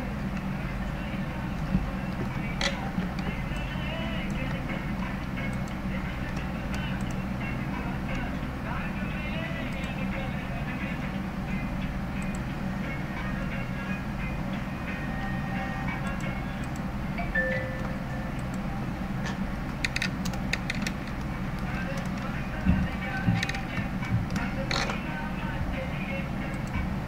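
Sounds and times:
low hum: 0.0 - 27.0.

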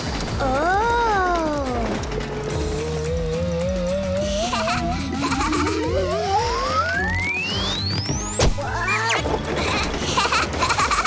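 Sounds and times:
cartoon background music: 0.2 - 11.0
falling pitched tone: 4.8 - 8.0.

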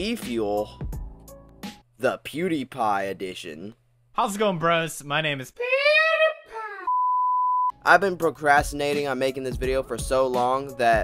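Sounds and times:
man speaking: 2.0 - 5.6.

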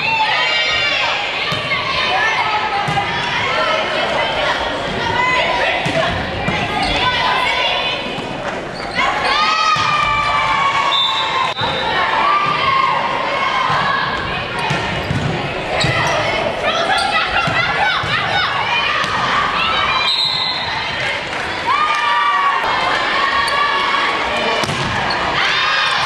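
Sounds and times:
players calling and shouting: 0.0 - 26.0
sneakers squeaking on floor: 8.5 - 9.2, 14.6 - 18.2
volleyball hits: 13.6 - 16.2, 24.5 - 25.2.

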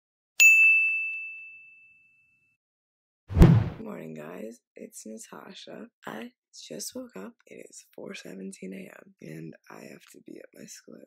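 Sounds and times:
bell-like ding: 0.4 - 1.9.

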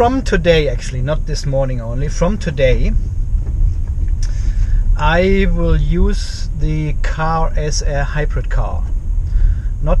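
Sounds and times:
road noise rumble inside car: 0.0 - 10.0.

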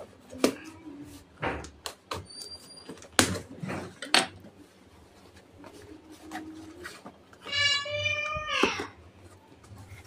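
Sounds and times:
cat meowing: 7.4 - 9.0.

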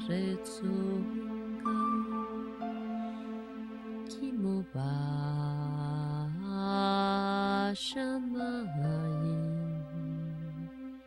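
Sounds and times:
person chanting long notes: 0.0 - 6.6.

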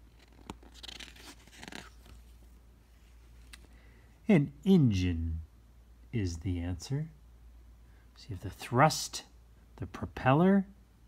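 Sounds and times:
paper page turning: 0.0 - 2.5.

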